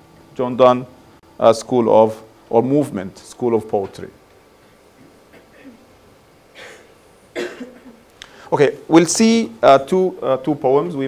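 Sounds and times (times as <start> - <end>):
person coughing: 5.3 - 5.8, 6.5 - 8.0.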